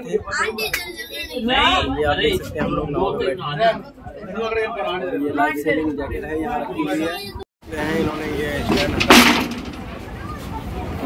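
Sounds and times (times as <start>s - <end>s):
steel gate clanging shut: 8.6s - 9.9s.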